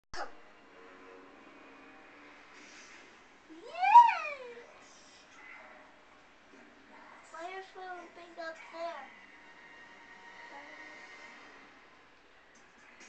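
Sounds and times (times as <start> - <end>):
child squealing: 3.5 - 4.6.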